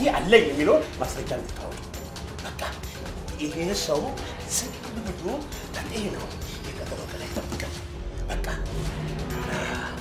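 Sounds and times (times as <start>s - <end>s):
man speaking forcefully: 0.0s - 7.4s.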